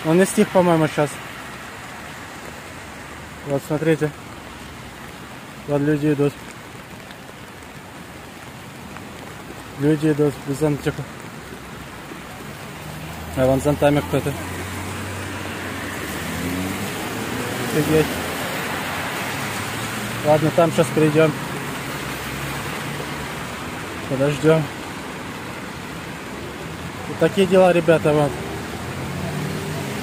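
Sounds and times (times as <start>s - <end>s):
heavy rain on wet street: 0.0s - 30.0s.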